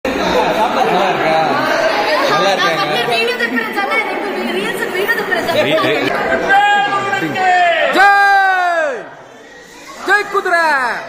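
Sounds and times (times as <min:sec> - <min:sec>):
women chattering excitedly: 0:01.6 - 0:07.3.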